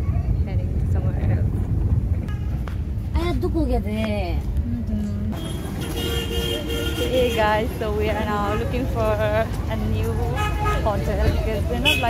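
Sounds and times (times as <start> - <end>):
street traffic rumble: 0.0 - 12.0
vehicle horn: 2.3 - 2.6, 5.4 - 7.7, 10.3 - 11.0, 11.8 - 12.0.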